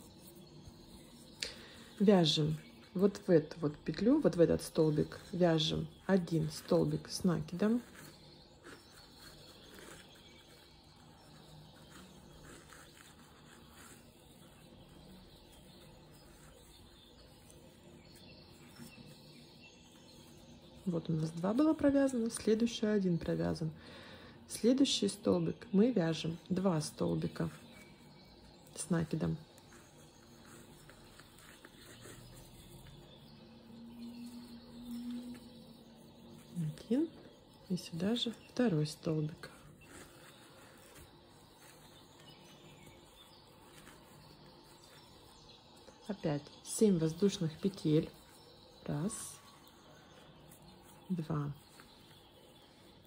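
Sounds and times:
crochet hook rustling twine: 0.0 - 23.8, 24.6 - 53.0.

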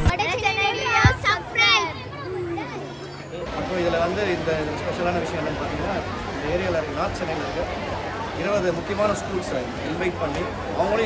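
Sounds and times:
boys calling out: 0.0 - 3.4.

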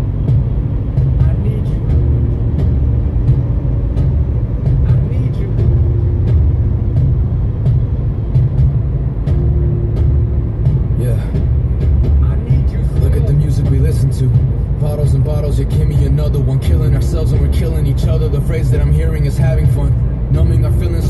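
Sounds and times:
car road and engine rumble: 0.0 - 21.0
song on car stereo: 0.0 - 21.0.

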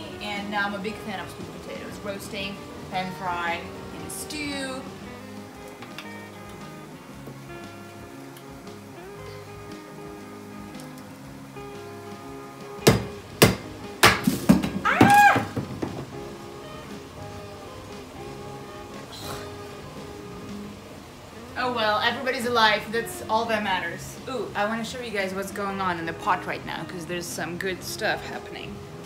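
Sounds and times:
background music: 0.0 - 29.0
knife chopping on wooden board: 12.9 - 14.6.

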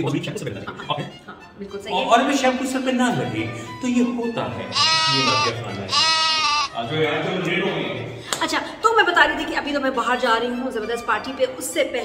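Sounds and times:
people talking: 0.0 - 6.0, 6.8 - 12.0
goat-like bleating cries: 4.7 - 6.8.

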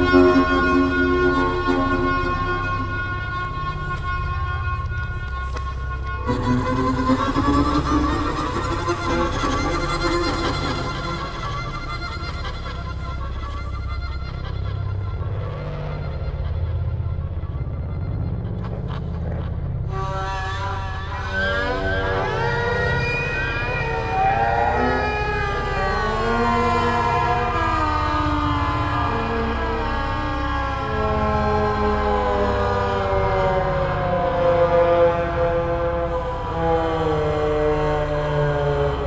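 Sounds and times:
sliding layered synth tones: 0.0 - 4.5, 21.3 - 39.0
low synth drone: 0.0 - 39.0.

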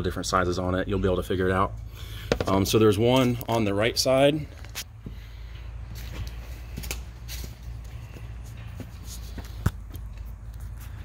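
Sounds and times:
footsteps and shuffling: 4.4 - 11.0.

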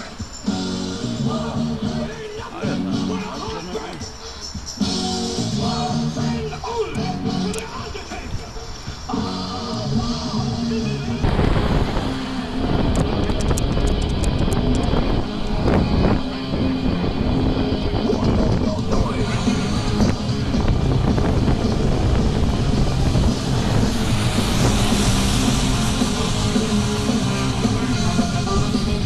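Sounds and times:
music playing: 0.0 - 29.0
steady low rumble: 4.8 - 29.0.

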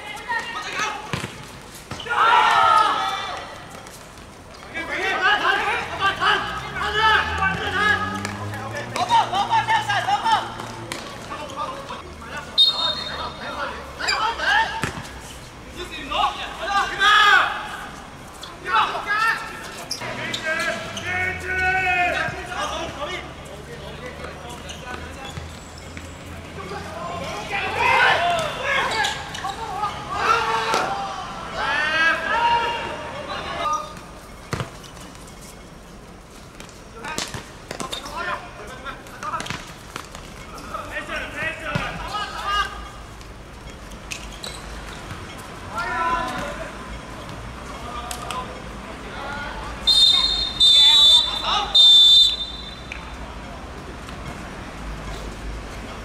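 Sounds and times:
players shouting: 0.0 - 3.8, 4.7 - 15.0, 15.7 - 25.4, 26.5 - 34.0, 45.6 - 46.9, 48.9 - 53.2.

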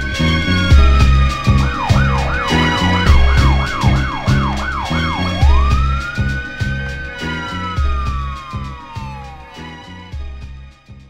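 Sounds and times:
police siren wail and yelp: 0.0 - 10.3
hip-hop beat with heavy bass: 0.0 - 11.0.

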